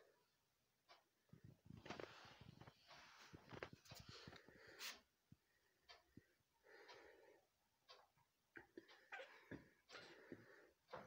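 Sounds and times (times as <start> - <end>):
small soft clicks and knocks: 0.8 - 6.3
faint rustling and scraping: 1.3 - 6.0.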